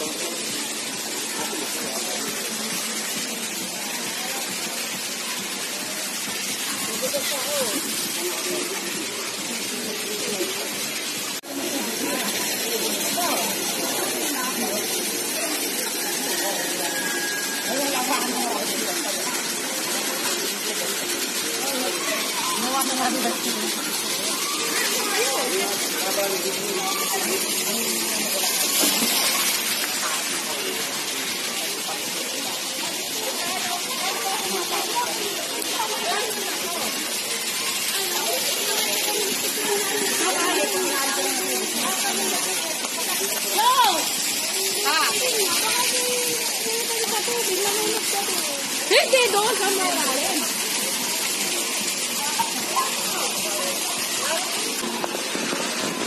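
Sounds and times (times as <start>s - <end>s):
people chattering: 0.0s - 56.0s
waterfall rushing into pool: 0.0s - 56.0s.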